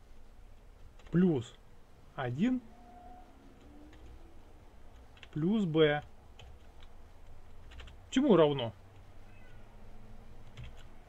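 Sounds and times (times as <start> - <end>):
low steady hum: 0.0 - 11.0
computer keyboard clicks: 10.4 - 11.0.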